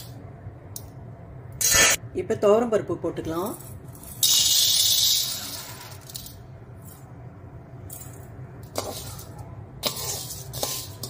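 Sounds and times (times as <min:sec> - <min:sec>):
lentils poured into metal pan: 0:08.8 - 0:11.0.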